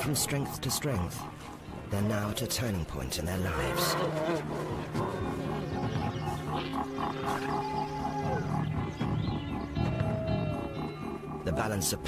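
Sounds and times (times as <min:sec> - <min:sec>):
background music: 0:00.0 - 0:12.0
wolves growling and snarling: 0:00.0 - 0:12.0.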